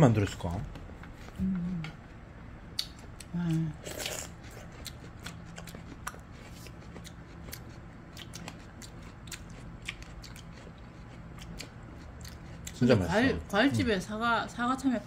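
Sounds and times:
faint steady hum: 0.0 - 15.0
crunching of melon being eaten: 2.8 - 12.9.

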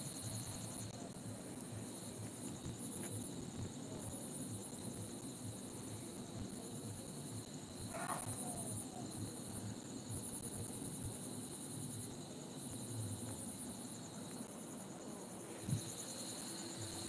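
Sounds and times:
insects trilling: 0.0 - 17.0.

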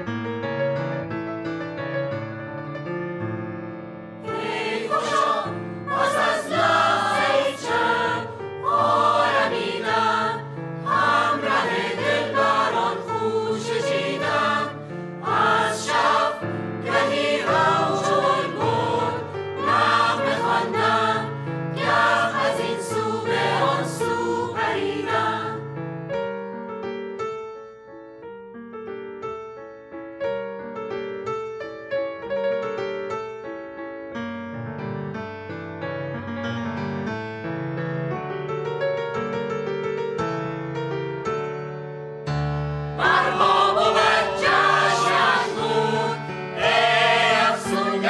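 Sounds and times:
piano: 0.0 - 48.0
mixed choir singing: 4.2 - 25.7, 43.0 - 48.0.

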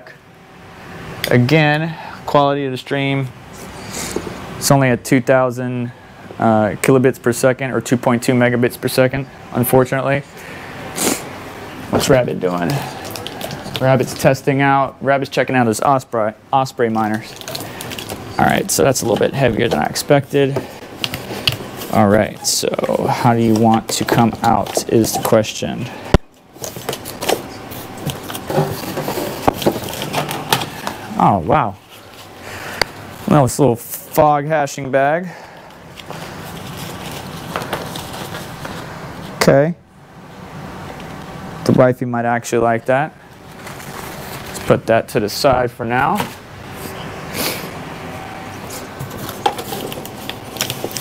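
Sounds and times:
steady low hum: 0.0 - 51.0
packaging rustling: 11.9 - 14.3, 16.9 - 25.4, 26.5 - 31.0, 35.6 - 38.9, 43.4 - 44.7, 48.8 - 51.0
items clicking and knocking: 26.6 - 31.0, 49.0 - 51.0.

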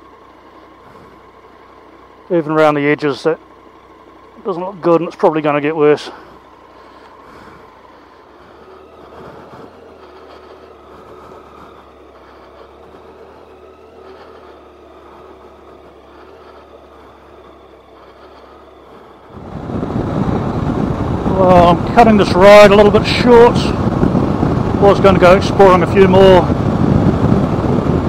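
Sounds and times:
motorcycle engine running: 0.0 - 28.0
wind rushing: 19.3 - 28.0.

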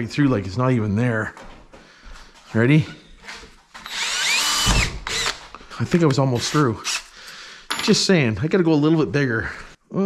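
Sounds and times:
cordless drill boring steel: 3.8 - 5.5.

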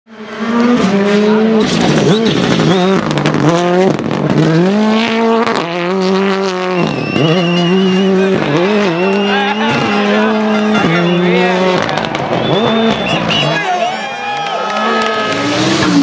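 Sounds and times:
rally car engine revving: 0.1 - 16.0.

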